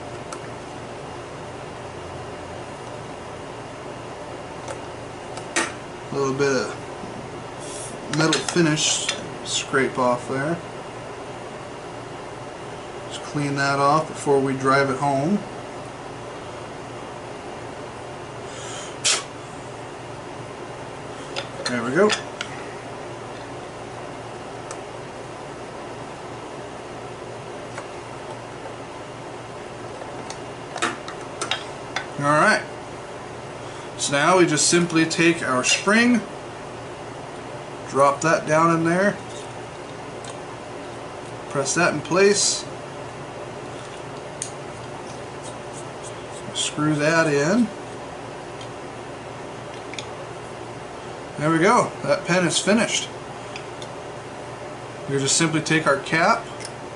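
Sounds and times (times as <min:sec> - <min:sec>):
low room hum: 0:00.0 - 0:56.9.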